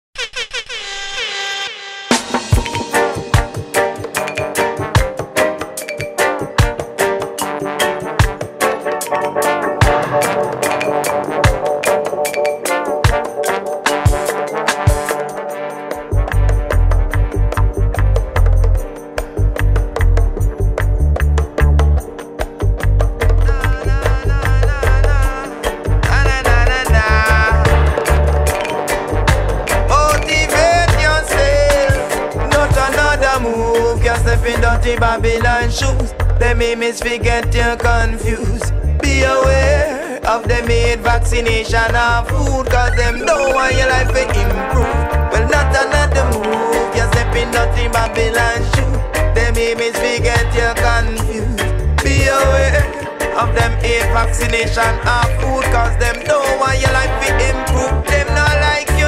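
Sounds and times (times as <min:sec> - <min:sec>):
air horn blasts: 0:00.7 - 0:03.1, 0:43.2 - 0:49.1
reggae bass line: 0:02.1 - 0:59.0
person singing: 0:23.2 - 0:28.9, 0:29.7 - 0:59.0
steady drum hits: 0:25.9 - 0:33.1.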